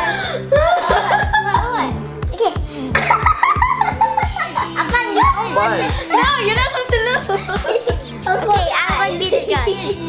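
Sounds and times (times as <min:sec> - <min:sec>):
background music with beat: 0:00.0 - 0:10.0
children chattering: 0:04.6 - 0:10.0.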